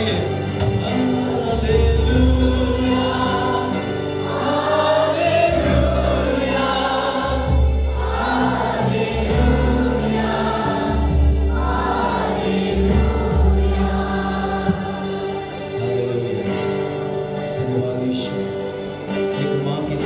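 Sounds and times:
man singing into a microphone: 0.0s - 7.4s, 15.7s - 20.0s
congregation singing: 0.0s - 20.0s
low bass notes: 0.0s - 20.0s.

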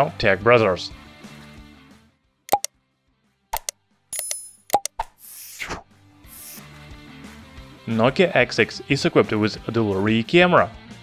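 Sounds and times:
quick pops and clicks: 3.6s - 5.8s.

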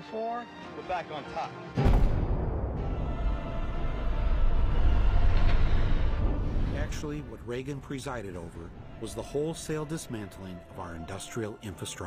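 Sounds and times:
loud deep rumble: 1.9s - 9.0s.

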